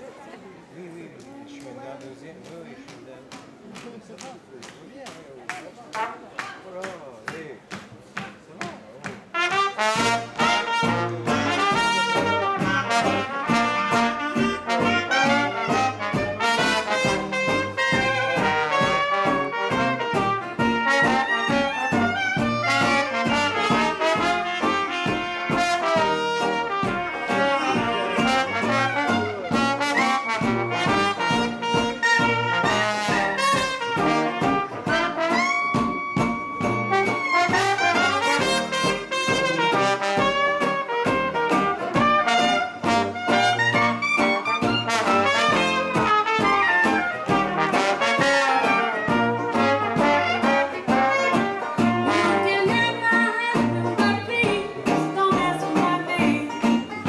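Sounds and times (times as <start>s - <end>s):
jazz band playing: 8.8s - 57.0s.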